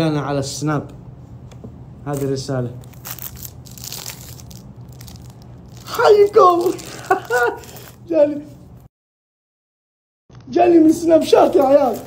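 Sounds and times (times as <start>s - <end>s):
paper and cardboard box rustling: 11.3s - 12.0s.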